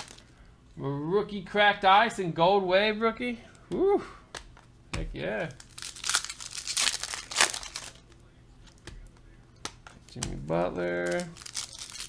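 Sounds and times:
foil wrapper crinkling and tearing: 0:00.0 - 0:00.2, 0:05.4 - 0:08.2, 0:10.1 - 0:12.0.

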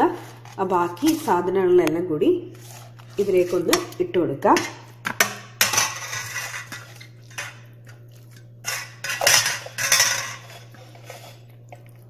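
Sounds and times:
metal utensil scraping pot: 0:02.6 - 0:11.7.

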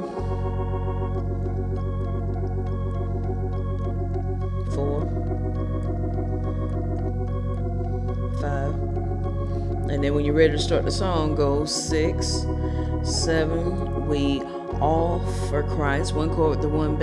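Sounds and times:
organ bass note: 0:00.0 - 0:17.0
organ chords: 0:00.0 - 0:17.0.

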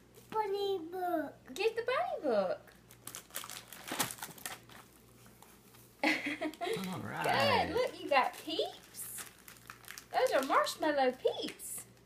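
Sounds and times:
packaging rustling and crinkling: 0:02.8 - 0:05.6, 0:07.2 - 0:11.6.

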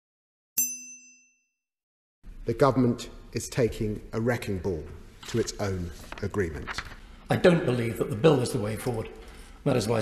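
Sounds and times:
bright bell-like ding: 0:00.6 - 0:01.6.

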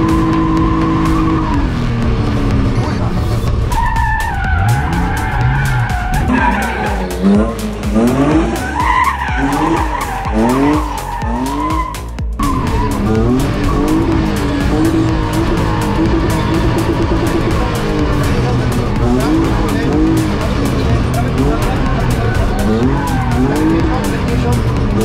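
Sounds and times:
car engine revving through gears: 0:00.0 - 0:25.0.

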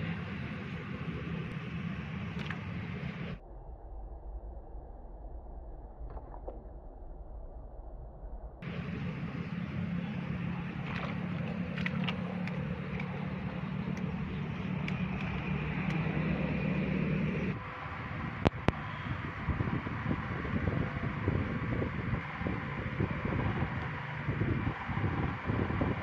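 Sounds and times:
low mechanical hum: 0:00.0 - 0:03.4, 0:08.5 - 0:26.0
wind rumble on microphone: 0:00.0 - 0:26.0
sharp clicks: 0:13.8 - 0:16.2.

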